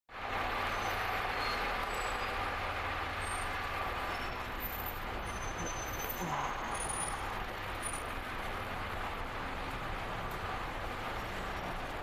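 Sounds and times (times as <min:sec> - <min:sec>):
cars idling and creeping: 0:00.1 - 0:12.0.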